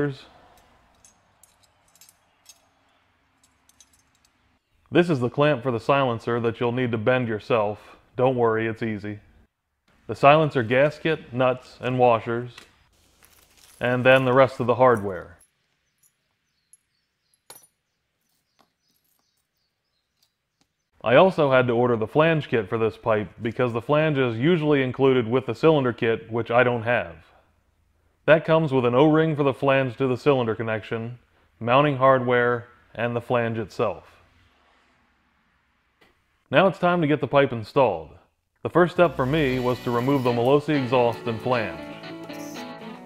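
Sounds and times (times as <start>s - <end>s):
metal hardware clinking: 0.5s - 4.6s, 14.9s - 17.8s.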